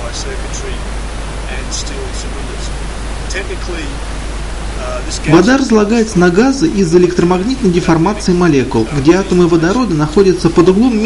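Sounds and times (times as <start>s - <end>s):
faint voice: 0.0s - 0.8s, 1.5s - 2.7s, 3.3s - 4.0s, 4.8s - 5.4s
steady hiss: 0.0s - 11.0s.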